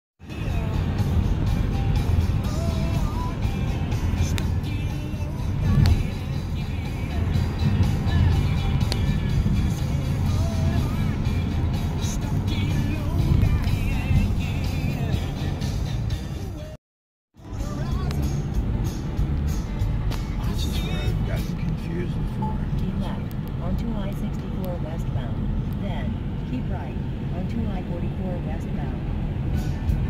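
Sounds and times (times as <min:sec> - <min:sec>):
car driving on highway: 0:00.2 - 0:16.8, 0:17.4 - 0:30.0
music playing: 0:00.2 - 0:16.8, 0:17.4 - 0:25.0, 0:28.2 - 0:30.0.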